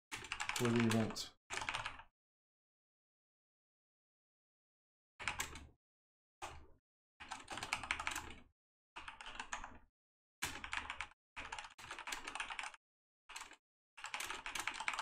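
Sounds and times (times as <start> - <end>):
typing on computer keyboard: 0.1 - 2.1, 5.2 - 5.7, 6.4 - 9.8, 10.4 - 15.0.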